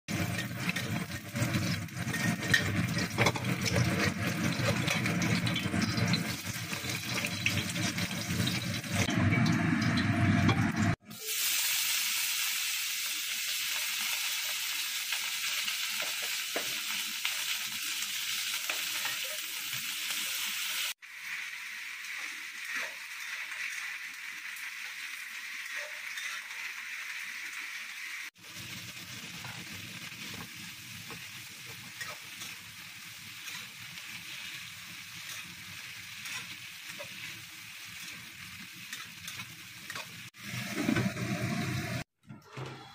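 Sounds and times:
beans stir-frying hiss: 0.1s - 9.1s, 10.9s - 42.1s
metal spatula in wok: 0.1s - 11.0s, 15.2s - 20.6s, 22.0s - 24.1s, 24.8s - 27.6s, 28.6s - 42.0s
egg sizzling in oil: 0.1s - 42.1s.

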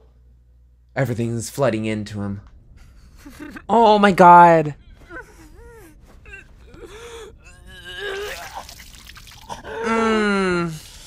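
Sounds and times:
person gasping and whimpering: 5.0s - 11.0s.

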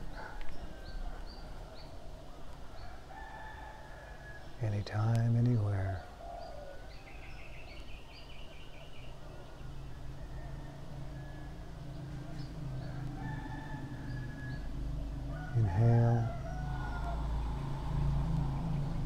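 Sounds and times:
rooster crowing: 2.8s - 4.5s, 10.1s - 19.0s
bird calls: 4.2s - 17.8s
low hum: 10.1s - 19.0s.

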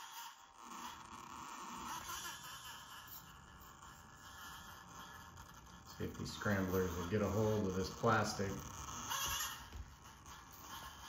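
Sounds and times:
small electric motor running: 0.0s - 11.0s.

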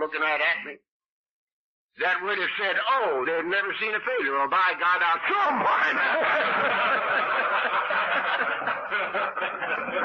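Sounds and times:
men laughing: 5.5s - 10.0s.

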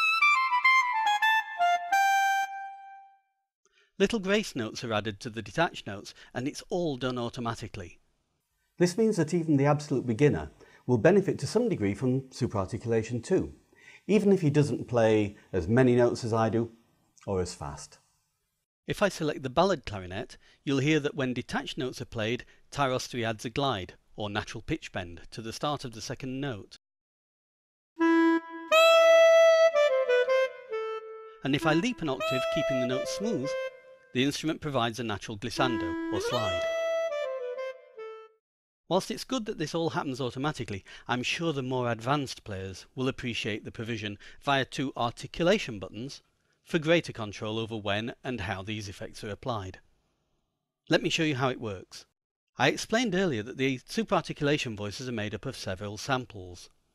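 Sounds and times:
staccato clarinet notes: 0.0s - 3.2s, 28.0s - 34.2s, 35.6s - 38.4s.

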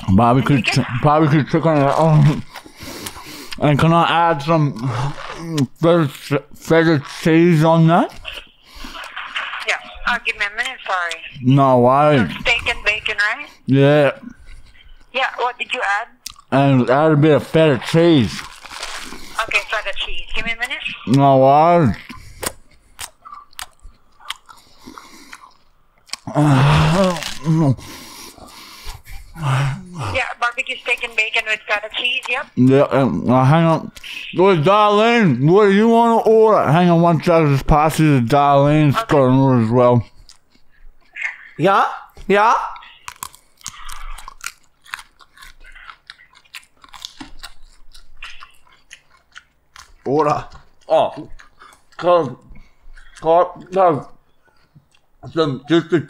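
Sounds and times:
soft chewing: 0.0s - 3.9s, 4.5s - 16.6s, 17.4s - 36.3s, 38.2s - 56.0s
lettuce crunching: 17.8s - 28.9s, 42.2s - 55.1s.

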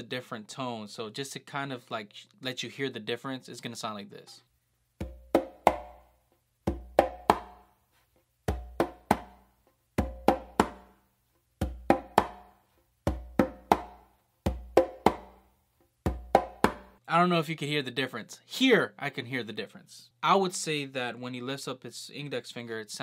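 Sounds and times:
conga bass tones and slaps: 5.0s - 7.7s, 8.4s - 11.0s, 11.6s - 17.0s.

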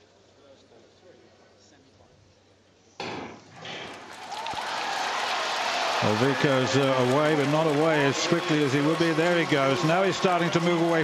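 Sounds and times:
stadium crowd cheering: 3.9s - 11.0s.

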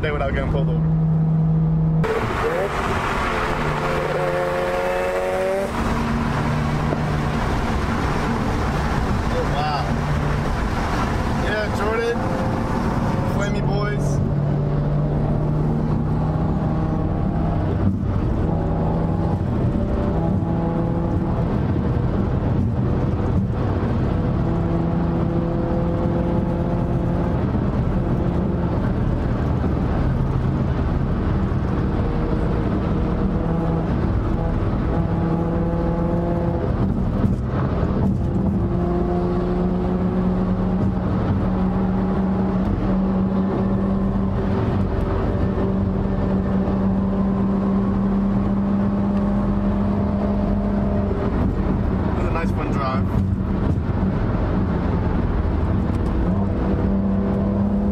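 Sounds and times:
car engine drone: 0.0s - 57.9s
tyre and road noise: 0.0s - 57.9s.

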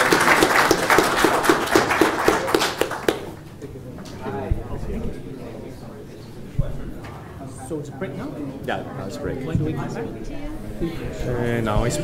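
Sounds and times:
audience applauding: 0.0s - 3.5s
person clapping close to microphone: 0.0s - 3.5s.

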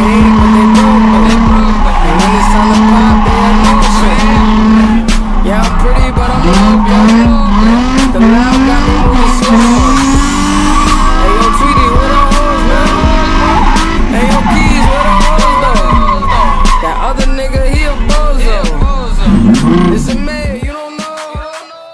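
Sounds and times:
car engine at high revs: 0.0s - 20.4s
tires squealing: 0.0s - 20.4s.

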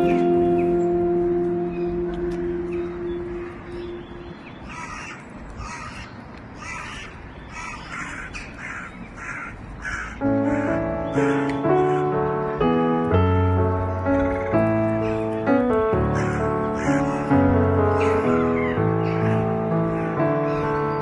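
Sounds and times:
held music note: 0.0s - 4.7s
piano music: 0.0s - 5.0s, 10.0s - 21.0s.

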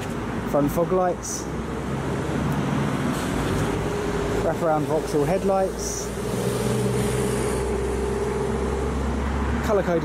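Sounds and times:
vehicle engine drone: 0.0s - 10.0s.

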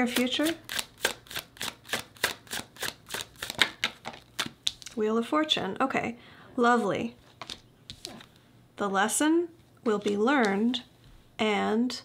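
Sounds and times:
cards being shuffled: 0.0s - 5.0s, 7.3s - 8.4s.

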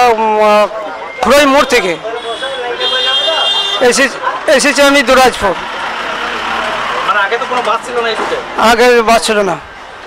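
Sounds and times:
vehicle passing by: 5.3s - 8.6s.

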